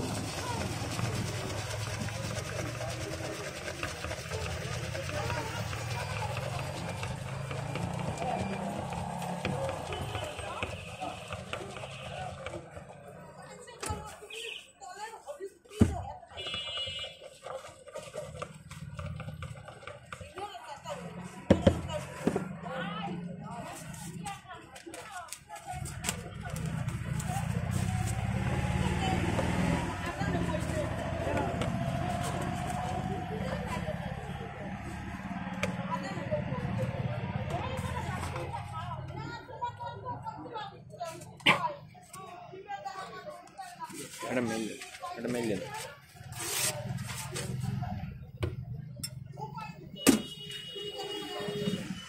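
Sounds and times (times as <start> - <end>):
voices: 0.0 - 52.0
paper rustling and clicks: 24.7 - 28.1.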